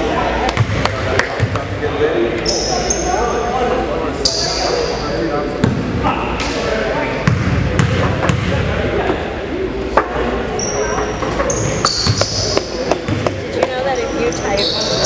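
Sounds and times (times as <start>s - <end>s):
spectators chatter: 0.0s - 15.0s.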